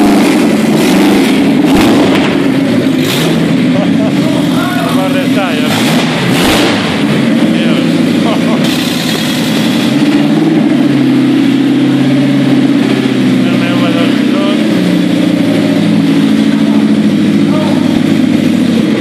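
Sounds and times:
car engine running: 0.0 - 19.0.

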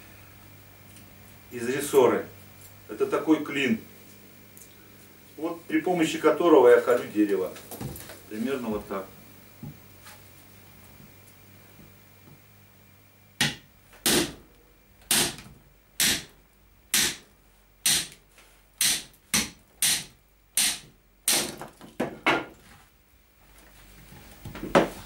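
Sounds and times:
hammer striking metal wedge: 13.4 - 14.4, 16.0 - 16.2, 16.9 - 17.2, 17.8 - 18.1.

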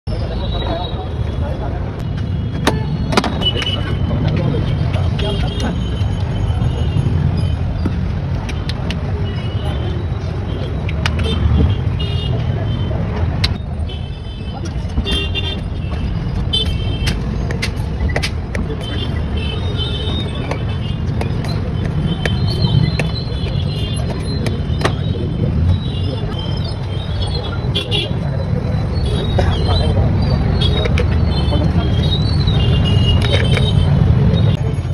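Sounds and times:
traffic rumble: 0.1 - 34.9.

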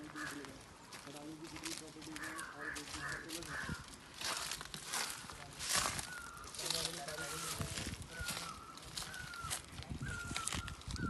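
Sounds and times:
bird calling harshly: 0.0 - 0.6, 2.1 - 11.0
men talking in low voices: 0.0 - 10.7.

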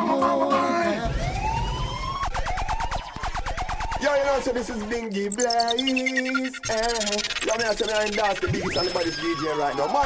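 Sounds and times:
dub siren rising tone and zaps: 1.0 - 10.0.

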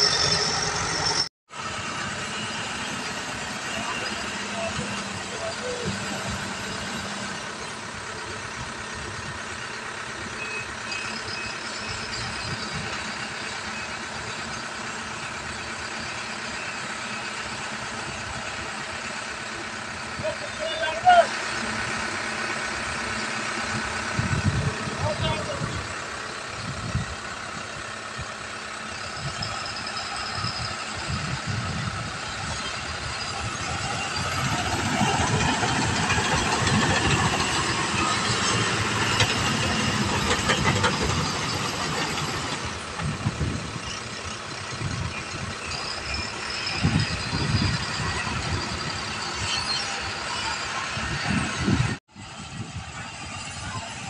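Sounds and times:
heavy diesel engine running: 0.0 - 54.0.

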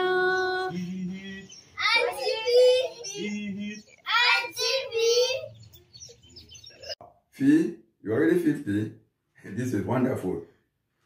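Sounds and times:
children singing and calling out: 0.0 - 6.9.

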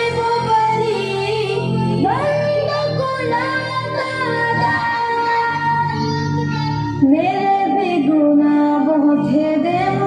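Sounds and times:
young female voices singing: 0.0 - 6.3.

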